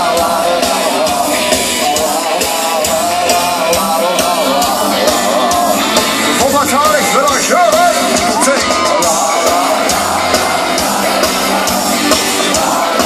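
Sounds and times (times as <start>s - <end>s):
live rock band playing: 0.0s - 13.0s
steady drum beat: 0.0s - 13.0s
wavering lead melody: 1.3s - 13.0s.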